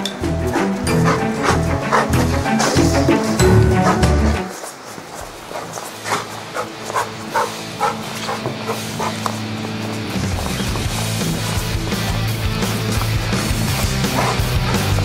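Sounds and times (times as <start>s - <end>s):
steady low musical drone: 0.0s - 4.6s
background music: 0.0s - 4.9s, 5.7s - 15.0s
dog barking quickly: 0.5s - 2.8s, 5.5s - 9.2s, 13.8s - 15.0s.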